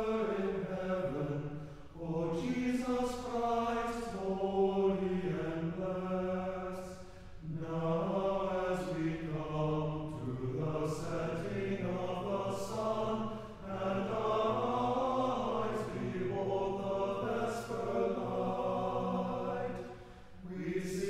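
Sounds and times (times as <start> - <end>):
church choir singing chant: 0.0 - 21.0.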